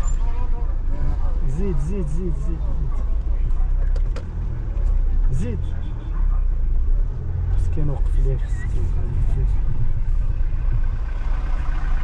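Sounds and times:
car engine and tyres rumbling: 0.0 - 12.0
faint voices outside: 0.0 - 12.0.

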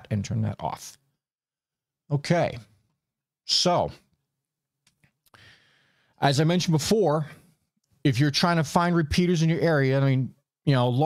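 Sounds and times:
quiet breath: 5.3 - 6.2.

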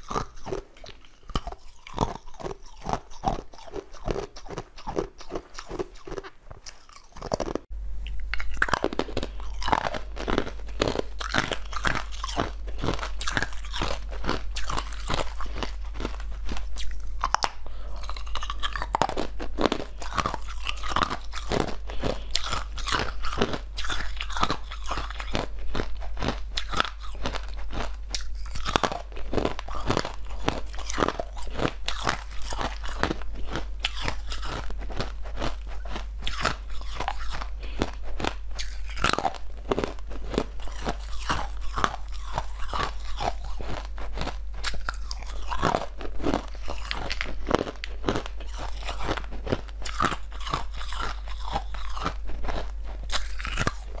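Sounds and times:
ice being chewed: 0.0 - 54.0.

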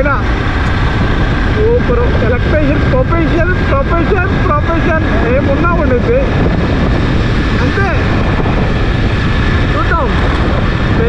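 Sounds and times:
motorbike engine rumble: 0.0 - 11.0
thin steady whine: 0.0 - 11.0
wind rush on microphone: 0.0 - 11.0
man talking: 1.6 - 6.3, 7.6 - 8.1, 9.7 - 10.2.

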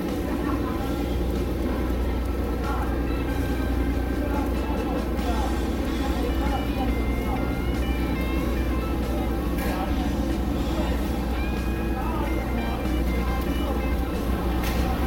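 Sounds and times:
indistinct voices: 0.0 - 15.0
low hum: 0.0 - 15.0
music: 0.0 - 15.0.

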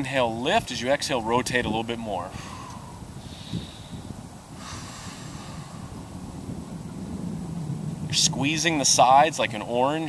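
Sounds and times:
wind rumble on microphone: 0.0 - 10.0
exhaled breath: 2.3 - 6.2.

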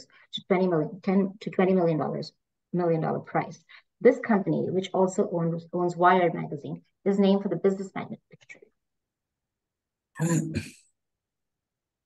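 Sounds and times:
person clearing throat: 10.2 - 10.8.

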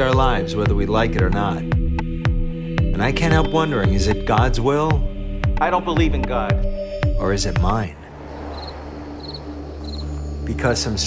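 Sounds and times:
crickets chirping: 8.0 - 10.8.

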